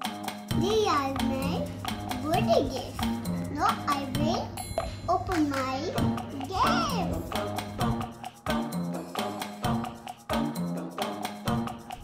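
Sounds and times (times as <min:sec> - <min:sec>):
music with steady beat: 0:00.0 - 0:12.0
young child's voice: 0:00.5 - 0:07.3.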